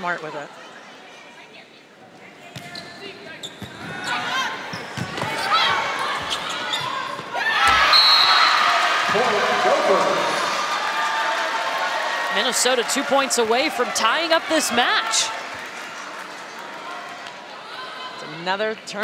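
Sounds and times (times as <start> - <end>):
shoes squeaking on court: 2.5 - 8.0
crowd cheering: 4.1 - 18.4
short high whistle: 7.9 - 8.6.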